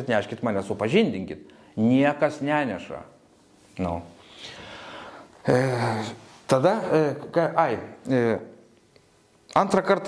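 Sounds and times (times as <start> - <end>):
faint breath: 4.2 - 5.3.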